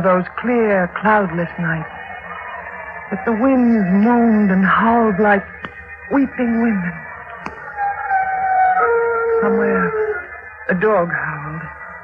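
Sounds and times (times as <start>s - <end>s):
eerie held tones: 1.7s - 12.0s.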